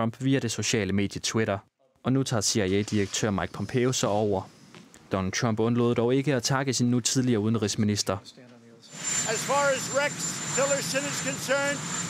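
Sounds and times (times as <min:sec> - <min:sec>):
man speaking: 0:00.0 - 0:04.5, 0:05.1 - 0:11.8
background noise: 0:00.0 - 0:12.0.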